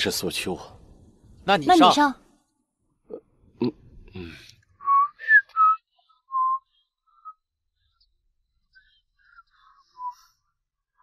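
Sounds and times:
breathy sound: 3.7 - 4.6
man whistling: 4.8 - 7.5, 9.3 - 10.4.

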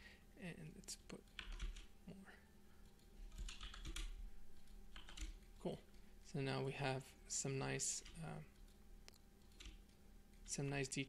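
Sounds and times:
computer keyboard keystrokes: 1.3 - 1.9, 2.8 - 5.5, 8.0 - 10.5.

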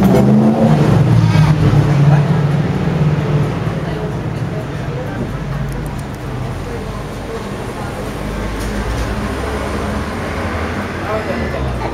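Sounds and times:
street traffic: 0.0 - 11.9
vehicle engine droning: 0.0 - 11.9.

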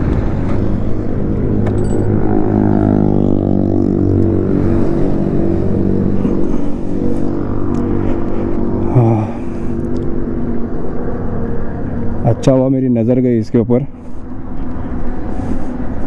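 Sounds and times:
motorcycle engine slowing down: 0.0 - 8.8.

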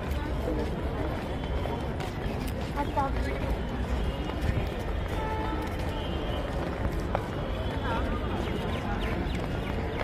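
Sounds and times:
crowd talking: 0.0 - 10.0
footsteps on a paved path: 0.0 - 10.0.

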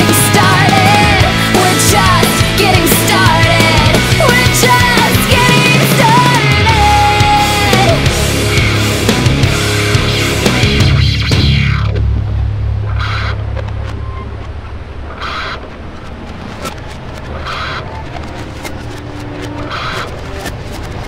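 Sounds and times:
rock band final hit: 0.0 - 15.2
low chord ringing: 11.8 - 20.7.

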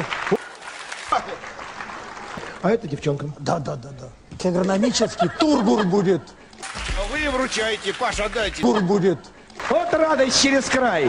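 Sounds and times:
audience applauding: 0.0 - 2.6, 9.6 - 11.0.

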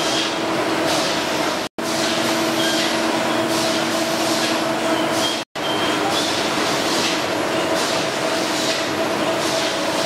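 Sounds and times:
production line machinery hum: 0.0 - 10.0.

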